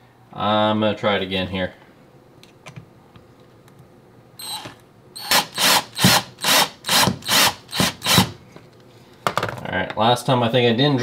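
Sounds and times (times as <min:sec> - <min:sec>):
power drill driving screw: 0:04.4 - 0:08.4.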